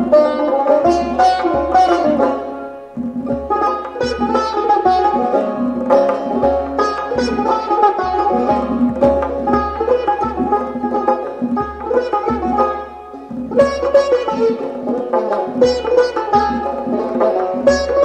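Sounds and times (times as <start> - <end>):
goblet drum strokes: 0.0 - 18.0
plucked lute melody: 0.0 - 18.0.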